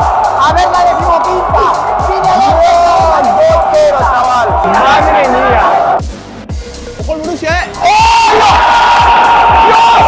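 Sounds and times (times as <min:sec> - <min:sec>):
stadium crowd noise: 0:00.0 - 0:06.0
music with a steady beat: 0:00.0 - 0:10.0
man shouting: 0:00.4 - 0:06.0, 0:07.8 - 0:08.8.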